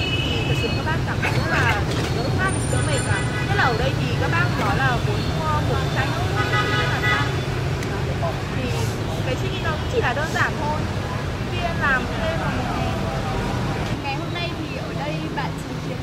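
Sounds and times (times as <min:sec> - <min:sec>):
road traffic rumble: 0:00.0 - 0:16.0
voices: 0:00.0 - 0:16.0.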